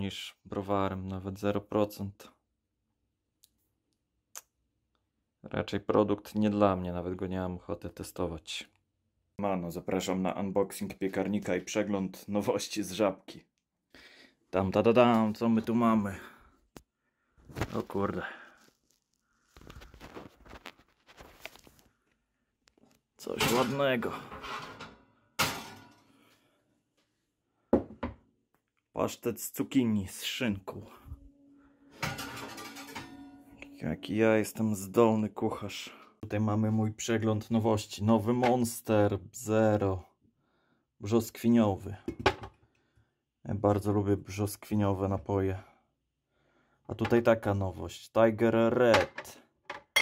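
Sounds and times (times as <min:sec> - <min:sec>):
person speaking: 0:14.5 - 0:16.4, 0:17.6 - 0:18.6, 0:23.2 - 0:24.5, 0:28.9 - 0:31.4, 0:32.0 - 0:40.0.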